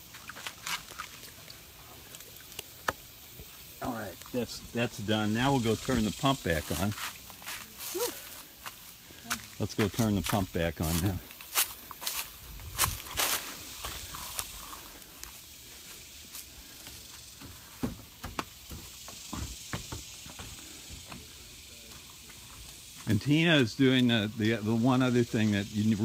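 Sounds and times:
footsteps on dry leaves: 0:05.8 - 0:17.8
footsteps on wooden deck: 0:06.7 - 0:23.1.

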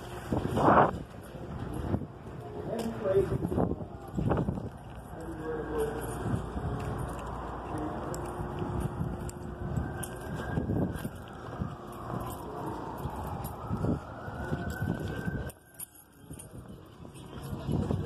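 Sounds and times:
footsteps: 0:00.0 - 0:18.0
street noise: 0:00.0 - 0:18.0
siren wailing: 0:05.0 - 0:18.0.

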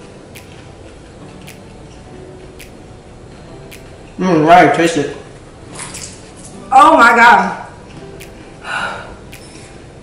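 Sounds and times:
popcorn being chewed: 0:00.0 - 0:02.6.

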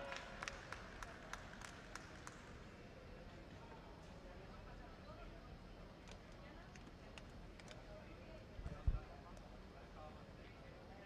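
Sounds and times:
faint hand claps: 0:00.0 - 0:02.8
low hum of large hall: 0:00.0 - 0:11.0.

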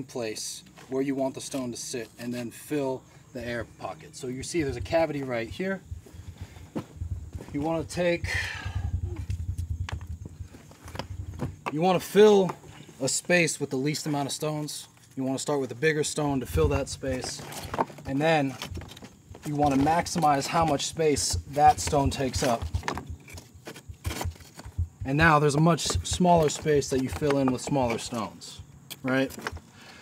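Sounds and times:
low steady rumble: 0:04.2 - 0:11.7, 0:19.4 - 0:27.3
stones knocking and scuffing: 0:06.0 - 0:07.8, 0:09.2 - 0:12.9, 0:16.4 - 0:29.7.

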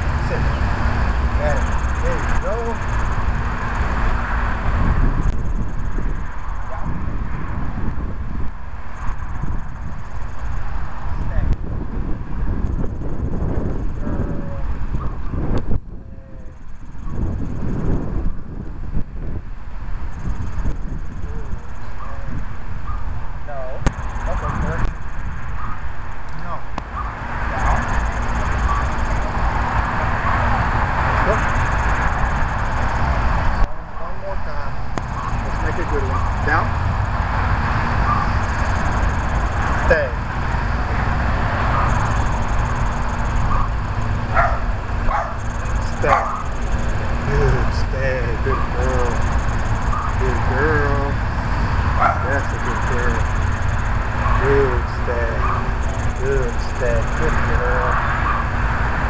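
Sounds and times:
distant voices: 0:00.0 - 0:59.0
wind rumble on microphone: 0:00.0 - 0:59.0.

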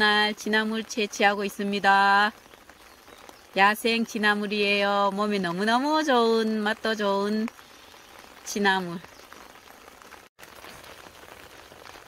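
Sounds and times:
light rain falling: 0:00.0 - 0:12.0.

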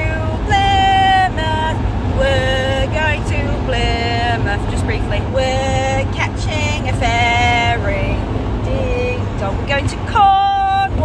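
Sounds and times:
van engine and road noise: 0:00.0 - 0:11.0
woman singing wordless tune: 0:00.0 - 0:11.0.

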